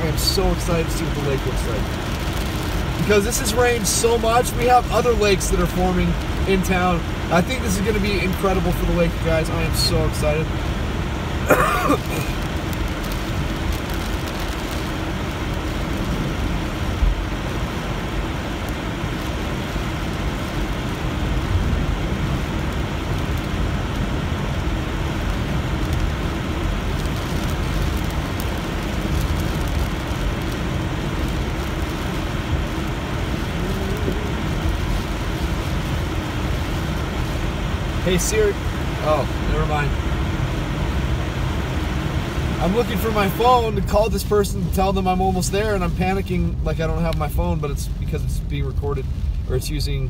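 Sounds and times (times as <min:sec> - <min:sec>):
rain on car: 0:00.0 - 0:50.0
tyres hissing on wet road: 0:00.0 - 0:50.0.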